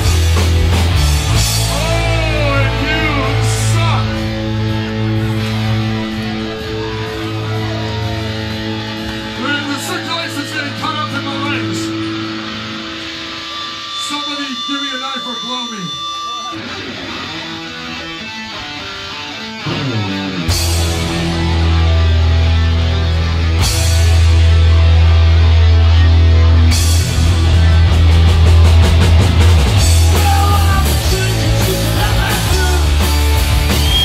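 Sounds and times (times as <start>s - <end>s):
electric guitars and bass ringing: 0.0s - 34.0s
people talking and shouting: 0.0s - 34.0s
rock band playing: 0.0s - 34.0s
steady high tone: 11.8s - 17.8s.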